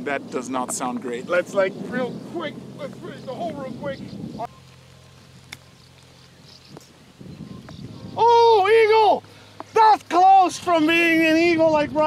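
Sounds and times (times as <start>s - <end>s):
light wind: 0.0s - 12.0s.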